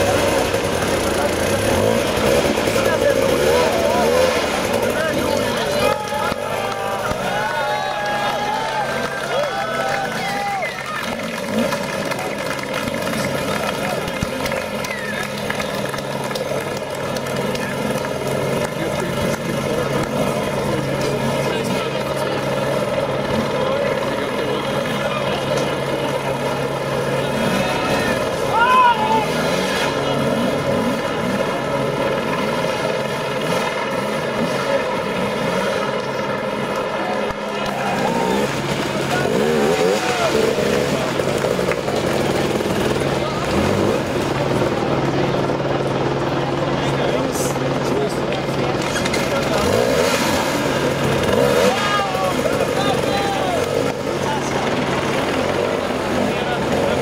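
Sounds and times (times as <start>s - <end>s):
crowd voices and shouts: 0.0s - 57.0s
dirt bike engine running: 0.0s - 57.0s.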